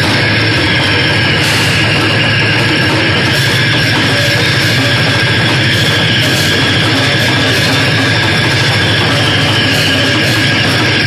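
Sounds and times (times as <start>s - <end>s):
band playing distorted noise-rock: 0.0s - 11.0s.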